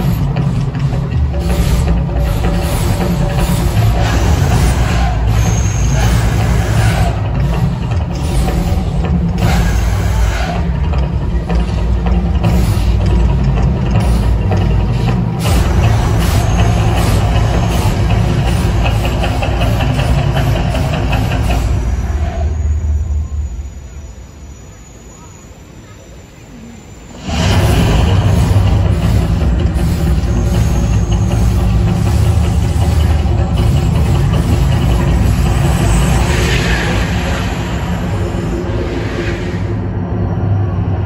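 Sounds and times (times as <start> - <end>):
deep rumbling soundtrack: 0.0 - 25.8, 26.5 - 41.0
gas fireballs bursting: 12.2 - 22.1, 27.2 - 40.0.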